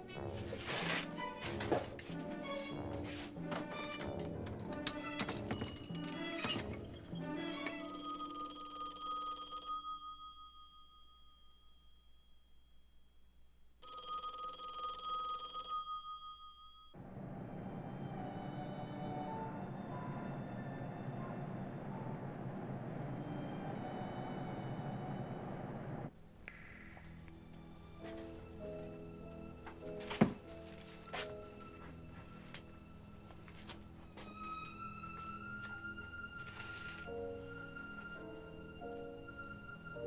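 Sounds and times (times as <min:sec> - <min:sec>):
telephone ringing: 0:07.4 - 0:11.6, 0:13.8 - 0:17.0
steady fuller tone: 0:17.0 - 0:27.8.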